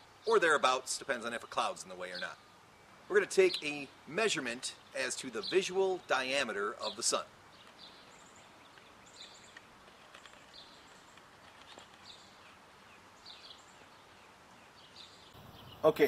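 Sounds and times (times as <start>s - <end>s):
distant birds chirping: 0.0s - 16.0s.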